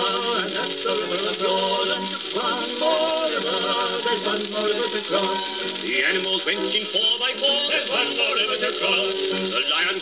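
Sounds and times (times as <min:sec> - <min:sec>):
old record playing sung song: 0:00.0 - 0:10.0
record surface noise hiss: 0:00.0 - 0:10.0.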